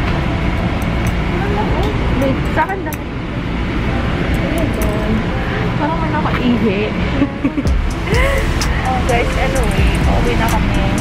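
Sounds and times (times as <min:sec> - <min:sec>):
train rumble: 0:00.0 - 0:11.0.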